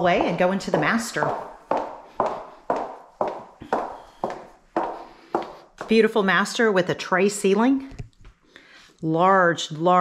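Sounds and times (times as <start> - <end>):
footsteps on hardwood floor: 0.0 - 6.3.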